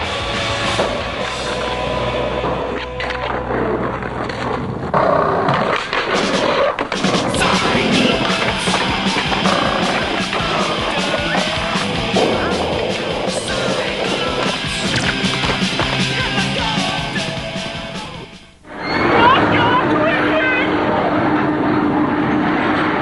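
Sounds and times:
music: 0:00.0 - 0:04.4, 0:07.0 - 0:20.8
skateboard rolling on pavement: 0:00.0 - 0:17.6
skateboard clacking: 0:00.7 - 0:17.3.

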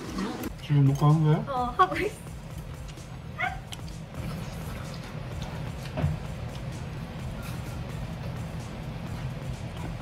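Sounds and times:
low room hum: 0:00.2 - 0:10.0
small dog yipping: 0:03.4 - 0:03.8.

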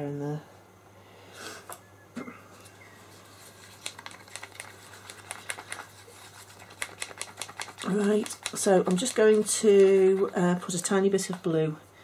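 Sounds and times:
soft rustle: 0:02.5 - 0:06.8.

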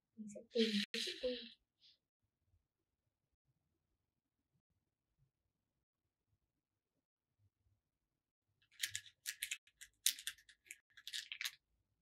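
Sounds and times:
plastic beads clicking and rattling: 0:08.7 - 0:11.6.

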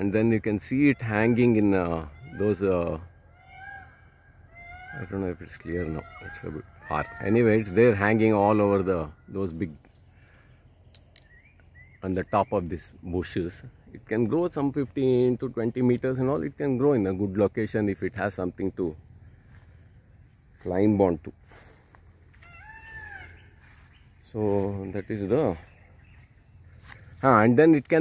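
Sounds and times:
rising bird chirps: 0:00.6 - 0:28.0
faint animal call: 0:00.8 - 0:09.4, 0:21.4 - 0:25.8.

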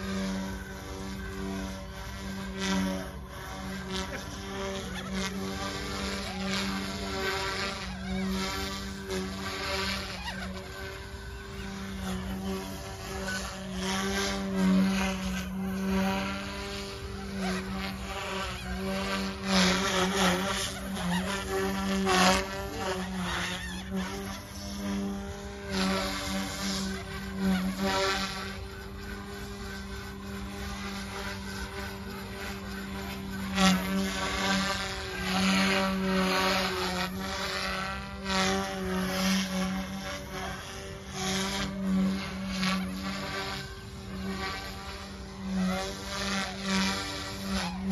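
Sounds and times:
helicopter rotor hum and motor whine: 0:00.0 - 0:47.9
swells of blade noise: 0:00.0 - 0:47.9.

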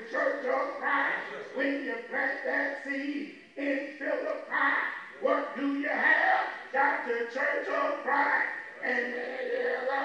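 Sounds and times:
man preaching into a microphone: 0:00.0 - 0:10.0.

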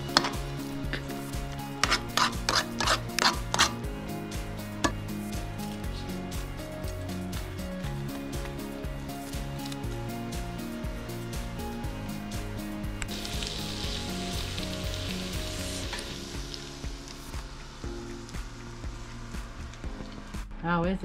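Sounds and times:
potatoes sizzling in skillet: 0:00.0 - 0:03.8, 0:13.0 - 0:19.6
background music: 0:00.0 - 0:21.0.

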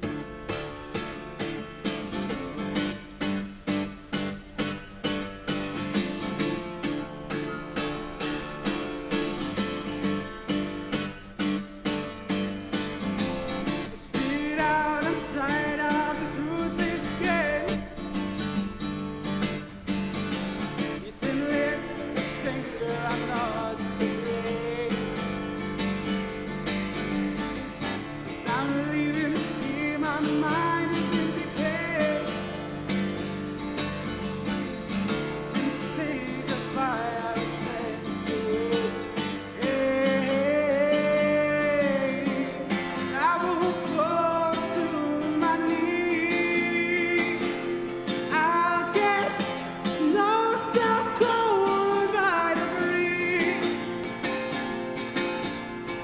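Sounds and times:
acoustic guitar: 0:00.0 - 0:56.0
man singing: 0:12.8 - 0:18.7, 0:20.2 - 0:33.4, 0:34.1 - 0:54.7.

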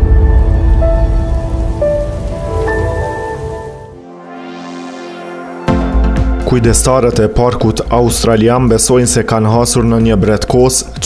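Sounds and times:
crackling rain-like noise: 0:00.0 - 0:04.0
heavy low rumble: 0:00.0 - 0:04.0
held electronic notes: 0:00.1 - 0:07.2.

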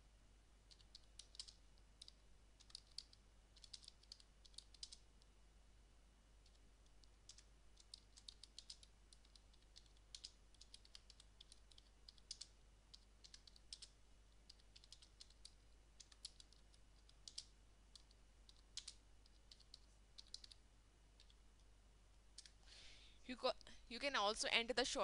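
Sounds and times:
keyboard typing: 0:00.7 - 0:05.1, 0:06.4 - 0:20.6, 0:21.2 - 0:21.7, 0:22.3 - 0:22.6.

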